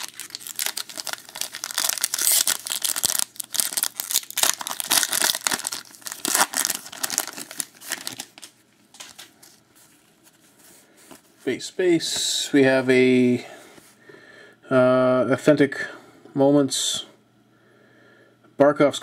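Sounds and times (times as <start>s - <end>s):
foil wrapper tearing and crinkling: 0.0s - 9.3s.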